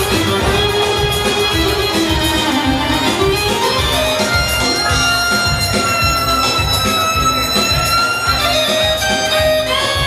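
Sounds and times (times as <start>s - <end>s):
keyboard lead melody: 0.0s - 10.0s
steady drum beat: 0.0s - 10.0s.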